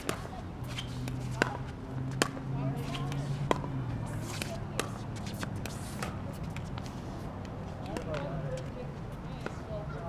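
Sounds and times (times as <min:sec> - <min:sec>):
paddle striking pickleball: 0:00.0 - 0:06.8.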